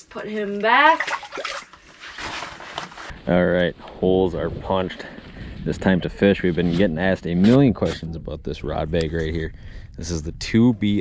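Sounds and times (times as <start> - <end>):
water splashing and sloshing: 0.2 - 3.1.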